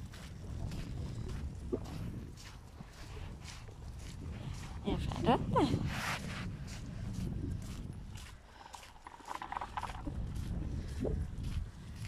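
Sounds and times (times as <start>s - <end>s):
footsteps crunching on dirt: 0.0s - 12.0s
wind rumble: 0.0s - 12.0s
microphone handling noise: 9.0s - 11.6s.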